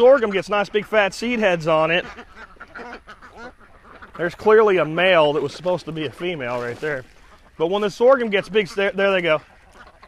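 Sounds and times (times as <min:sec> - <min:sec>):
ducks quacking: 0:00.0 - 0:10.0.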